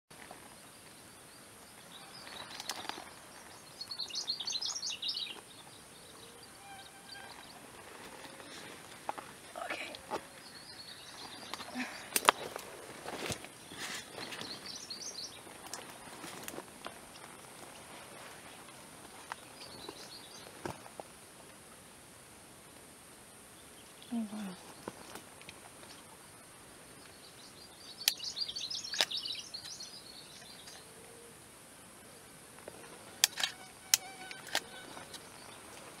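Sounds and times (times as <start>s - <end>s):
steady high hiss: 0.2s - 36.0s
high-pitched insect hiss: 33.3s - 35.6s.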